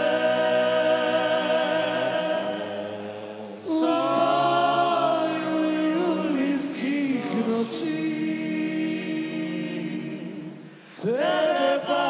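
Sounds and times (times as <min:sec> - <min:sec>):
men singing in harmony: 0:00.0 - 0:12.0.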